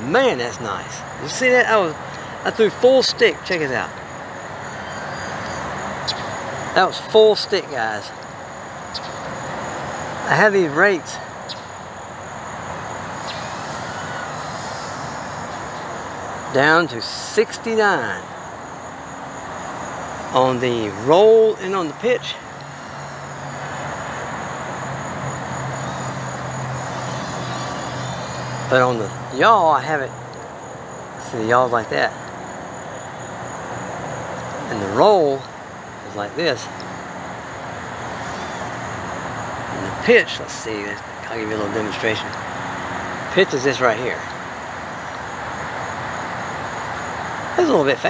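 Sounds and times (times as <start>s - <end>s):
background hiss: 0.0s - 48.0s
faint high whine: 0.0s - 48.0s
faint high-pitched chirping: 4.6s - 8.2s, 8.9s - 9.4s, 10.2s - 12.0s, 13.2s - 17.7s, 25.7s - 32.1s, 38.1s - 38.8s.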